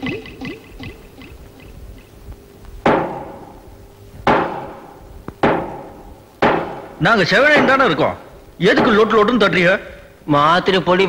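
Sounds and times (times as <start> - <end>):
gavel striking bench: 2.9 - 3.6, 4.2 - 9.2.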